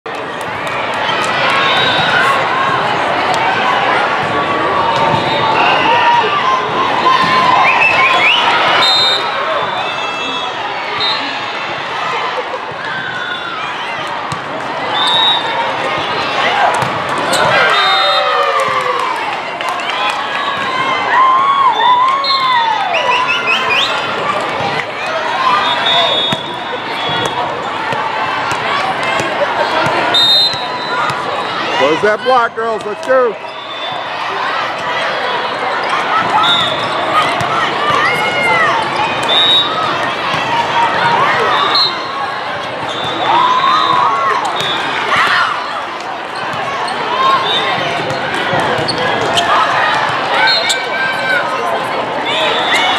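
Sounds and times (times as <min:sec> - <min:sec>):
players and spectators shouting: 0:00.1 - 0:52.9
volleyball hits: 0:04.2 - 0:05.6, 0:15.7 - 0:17.7, 0:25.8 - 0:31.4
short high referee whistles: 0:07.6 - 0:09.4, 0:11.0 - 0:11.4, 0:14.9 - 0:15.6, 0:25.5 - 0:27.4, 0:30.1 - 0:31.1, 0:36.4 - 0:36.8, 0:39.2 - 0:39.8, 0:42.8 - 0:45.0, 0:50.4 - 0:50.9
sneakers squeaking on court: 0:16.8 - 0:17.6, 0:46.3 - 0:49.6.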